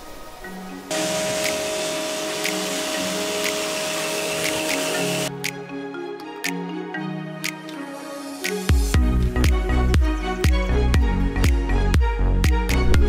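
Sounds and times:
pressure washer spraying water: 0.9 - 5.3
background music with a beat: 0.9 - 13.0.

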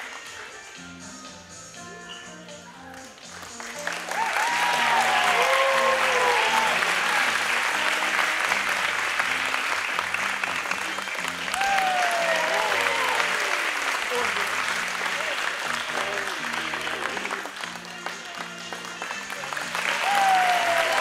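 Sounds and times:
soft music: 0.0 - 21.0
audience applauding: 2.8 - 21.0.

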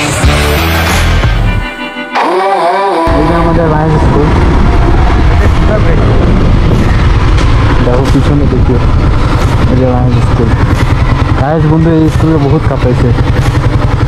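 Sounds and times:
motorcycle engine: 0.0 - 14.0
wind noise on microphone: 3.1 - 11.4.

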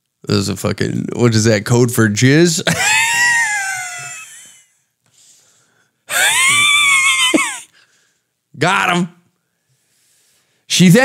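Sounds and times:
man laughing hard: 2.6 - 4.7, 6.1 - 7.8
faint breath: 5.1 - 6.0, 7.7 - 8.4, 9.4 - 10.7.

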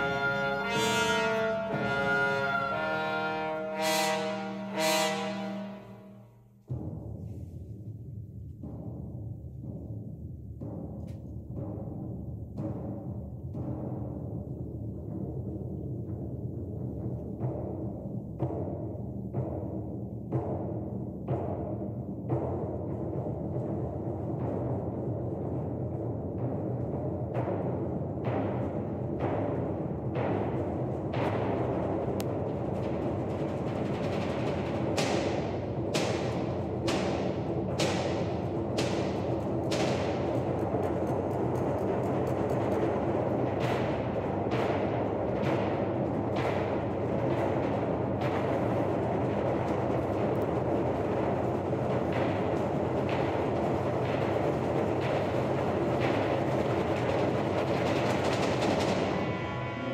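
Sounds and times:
symphony orchestra playing: 0.0 - 6.0
heavy percussive strokes: 0.0 - 59.9.

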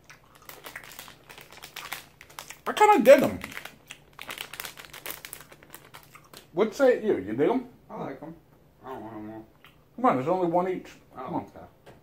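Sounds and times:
plastic wrapper crinkling: 0.0 - 6.5.

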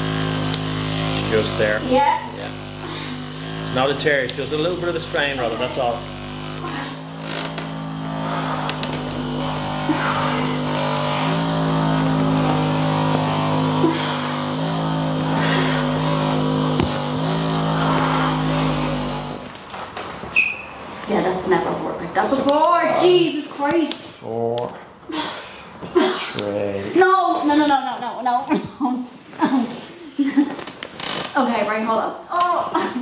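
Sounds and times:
massage gun motor hum: 0.0 - 24.3, 25.0 - 31.4.

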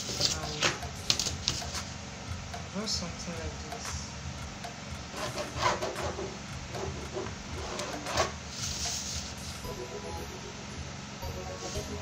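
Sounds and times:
pen and ruler on cardboard: 0.0 - 1.9, 5.1 - 9.6
steady low hum: 0.0 - 12.0.

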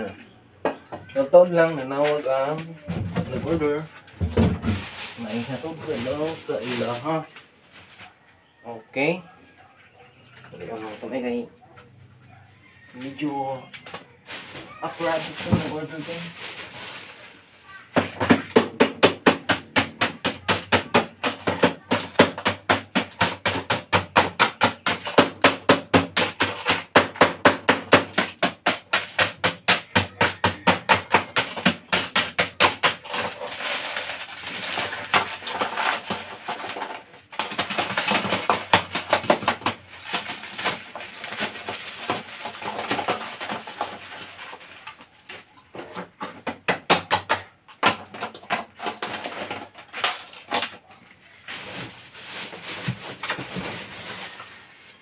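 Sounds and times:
ice crunching and rattling: 2.0 - 8.1, 14.2 - 55.0
ice being pounded in bag: 4.2 - 7.2, 14.3 - 50.8, 51.5 - 54.5.

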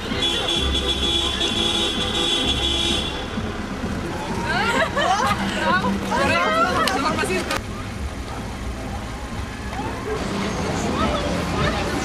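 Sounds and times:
music with held notes: 0.0 - 12.0
girls shouting and cheering: 4.2 - 7.6.

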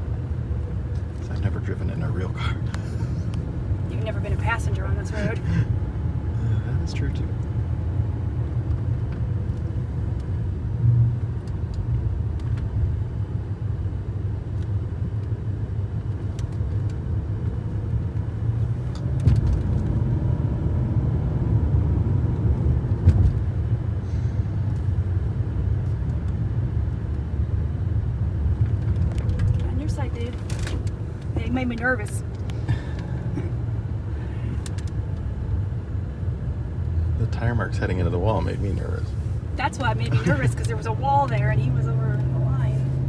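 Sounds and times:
road and tyre noise in car cabin: 0.0 - 43.0.

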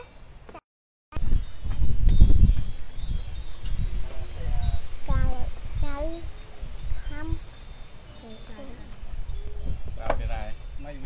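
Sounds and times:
low rumbling on microphone: 1.2 - 7.6
faint high tinkling: 1.2 - 11.0.

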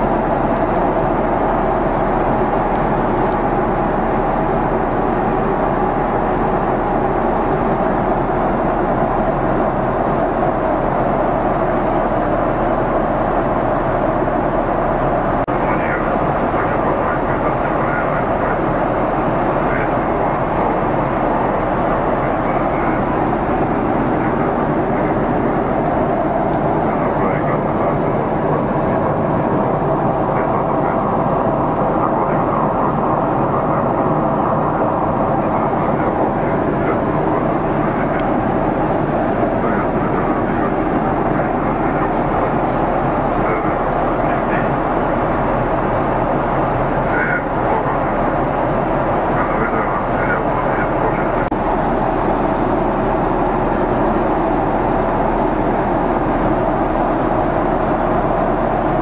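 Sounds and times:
airliner cabin noise: 0.0 - 59.0.

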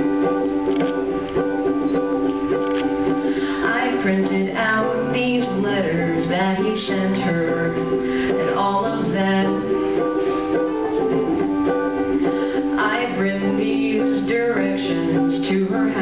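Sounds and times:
ukulele strumming: 0.0 - 16.0.

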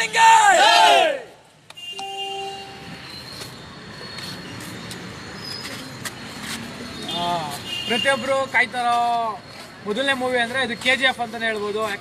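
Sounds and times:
steady background noise: 0.0 - 12.0
horn-like tone: 1.9 - 2.9.

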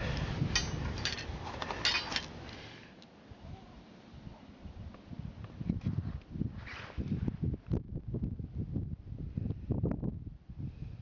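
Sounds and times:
wind buffeting microphone: 0.0 - 1.6, 4.2 - 11.0.

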